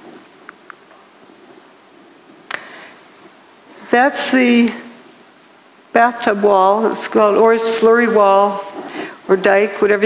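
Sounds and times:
faint microphone hiss: 0.0s - 10.0s.

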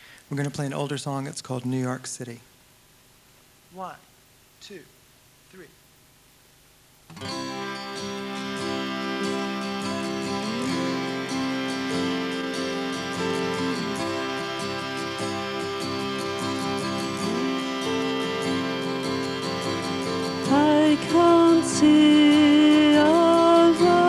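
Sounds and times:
strummed acoustic guitar: 7.1s - 24.0s
sliding electric guitar notes: 7.2s - 24.0s
sustained keyboard chords: 7.2s - 24.0s.

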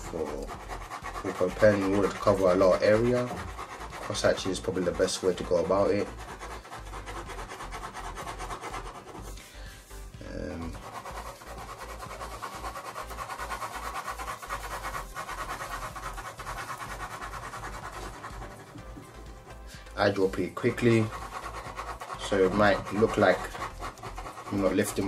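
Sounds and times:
pen scratching on paper: 0.0s - 25.0s.

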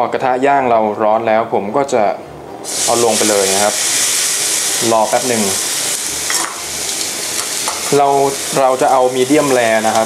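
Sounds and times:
steak sizzling on grill pan: 2.6s - 10.0s.

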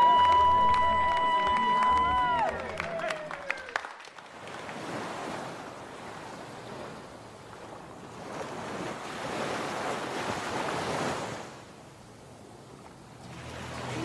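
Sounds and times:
sea waves washing: 4.2s - 14.0s.

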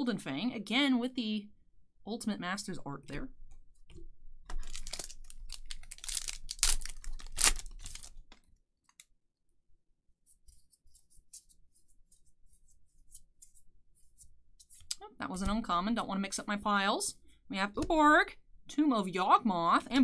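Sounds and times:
cards snapping: 4.6s - 8.2s
cards rustling and sliding: 4.6s - 8.3s, 10.3s - 15.0s.

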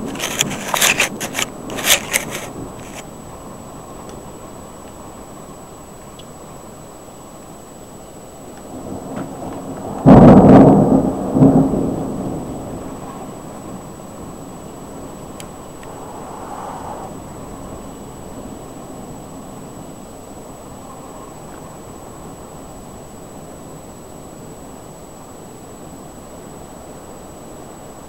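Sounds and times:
thunder rumbling and cracking: 8.6s - 20.4s.

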